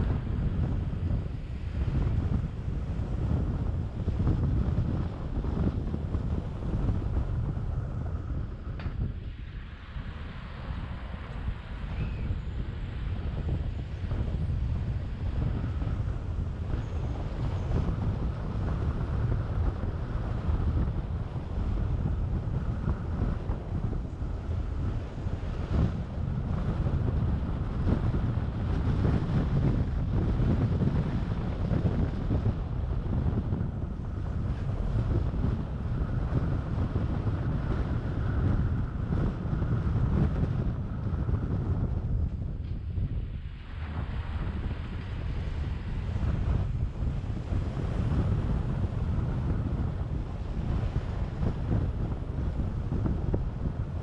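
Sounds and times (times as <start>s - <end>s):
car road noise: 0.0s - 54.0s
wind buffeting microphone: 0.0s - 54.0s.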